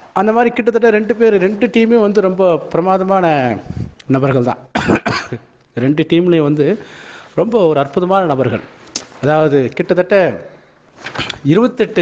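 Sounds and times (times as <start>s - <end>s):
man talking: 0.1s - 10.7s, 11.3s - 12.0s
short cough: 4.7s - 5.5s.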